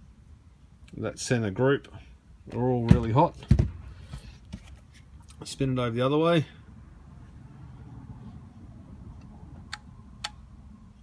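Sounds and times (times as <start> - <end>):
sharp clicks: 9.2 - 10.4.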